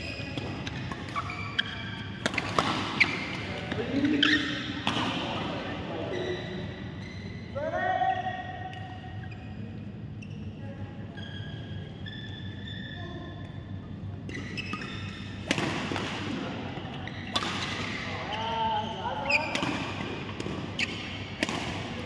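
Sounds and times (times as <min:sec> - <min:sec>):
shoes squeaking on court mat: 0:00.0 - 0:04.8, 0:05.4 - 0:07.5, 0:09.2 - 0:13.5, 0:14.2 - 0:15.5, 0:16.7 - 0:17.4, 0:18.2 - 0:21.4
steady hall hum: 0:00.0 - 0:22.0
racket hitting shuttlecock: 0:00.4 - 0:03.4, 0:04.2 - 0:05.4, 0:14.3 - 0:16.4, 0:19.4 - 0:22.0.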